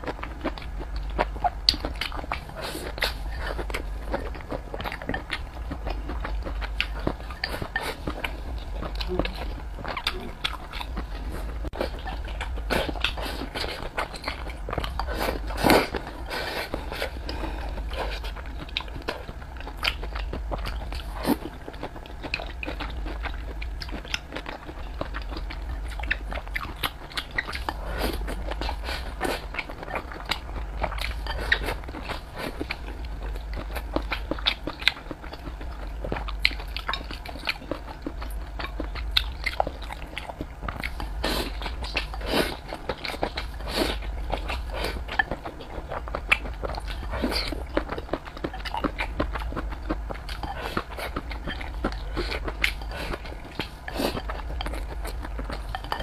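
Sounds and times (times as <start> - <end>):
close chewing and biting: 0.0 - 56.0
steady low hum: 0.0 - 56.0.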